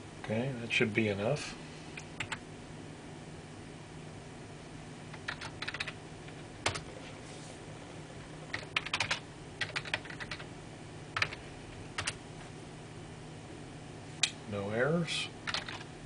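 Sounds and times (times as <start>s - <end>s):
faint low hum: 0.0s - 16.0s
computer keyboard typing: 2.1s - 2.4s, 5.1s - 7.0s, 8.3s - 10.5s, 11.2s - 12.2s, 15.4s - 15.9s.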